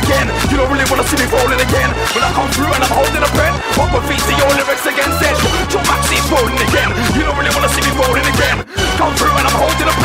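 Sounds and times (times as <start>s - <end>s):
man rapping fast over a beat: 0.0s - 10.0s.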